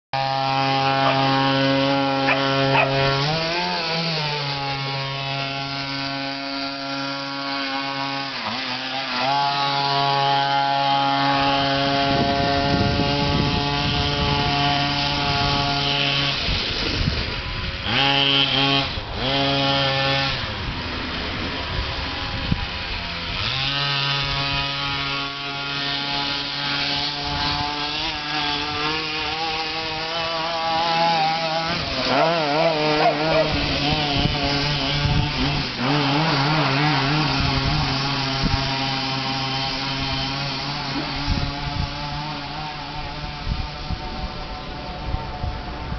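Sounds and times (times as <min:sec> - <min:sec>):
small two-stroke engine revving: 0:00.2 - 0:45.9.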